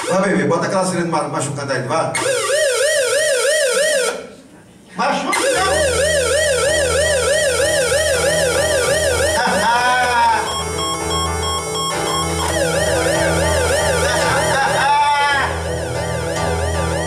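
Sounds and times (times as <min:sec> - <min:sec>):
synthesizer siren-like warble: 0:00.0 - 0:00.5, 0:02.2 - 0:04.3, 0:05.3 - 0:17.0
low bass hum: 0:10.5 - 0:14.8.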